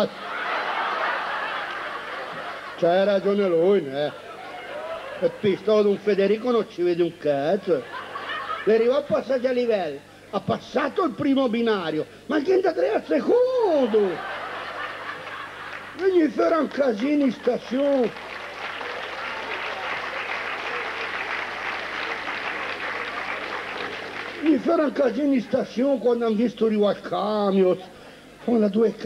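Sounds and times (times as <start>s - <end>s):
audience laughing: 0.0s - 6.6s, 7.5s - 9.1s, 13.6s - 24.9s.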